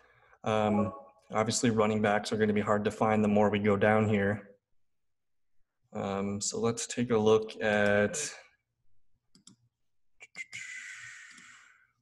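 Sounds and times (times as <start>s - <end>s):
computer mouse clicking: 9.3s - 9.7s.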